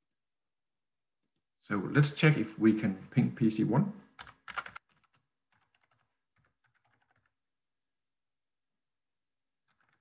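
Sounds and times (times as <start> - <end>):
keyboard typing: 4.2 - 7.4, 9.6 - 10.0.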